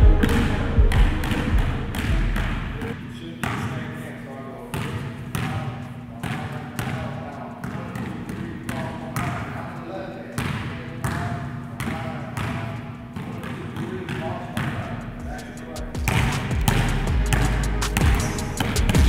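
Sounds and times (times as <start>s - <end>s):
basketballs bouncing on a gym floor: 0.1s - 3.9s, 4.7s - 15.4s, 16.0s - 19.0s.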